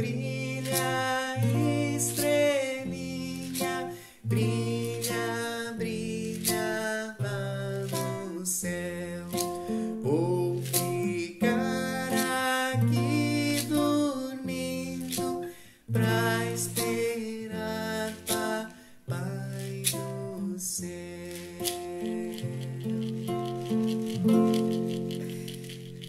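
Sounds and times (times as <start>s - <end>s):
classical guitar melody: 0.0s - 26.0s.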